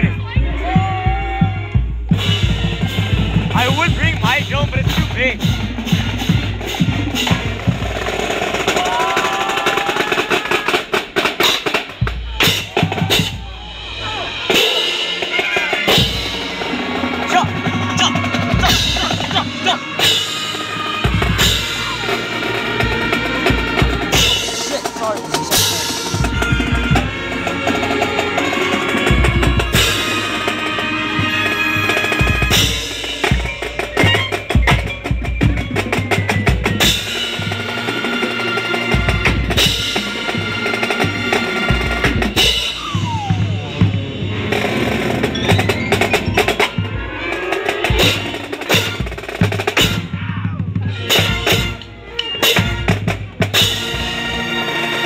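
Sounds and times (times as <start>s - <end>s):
horn chords: 0.0s - 8.8s, 11.4s - 55.0s
snare and bass drums: 0.0s - 55.0s.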